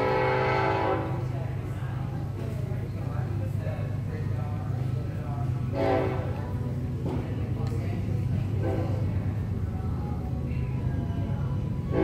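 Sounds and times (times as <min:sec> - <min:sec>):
train air horn: 0:00.0 - 0:01.3, 0:05.7 - 0:06.4, 0:08.6 - 0:09.1.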